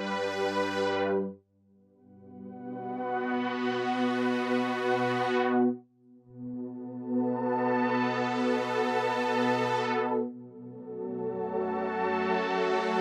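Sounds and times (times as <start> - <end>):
filtered synthesizer chord: 2.2 - 13.0.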